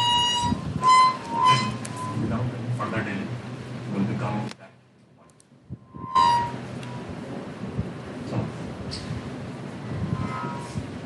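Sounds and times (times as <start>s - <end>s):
steady rumbling hiss: 0.0s - 11.0s.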